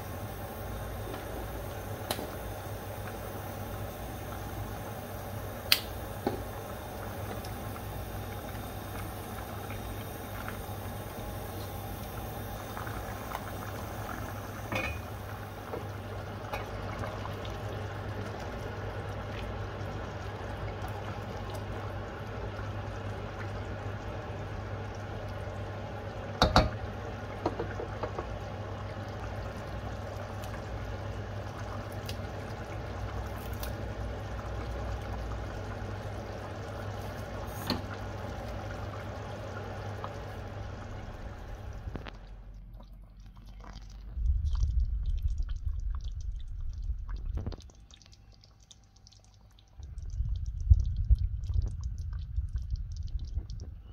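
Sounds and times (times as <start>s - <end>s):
curry bubbling in pot: 0.0s - 53.9s
steady low hum: 0.0s - 53.9s.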